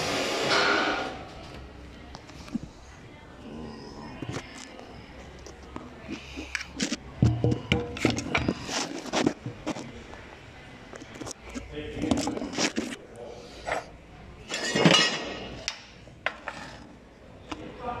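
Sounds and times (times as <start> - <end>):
indistinct voices: 1.2 - 16.0.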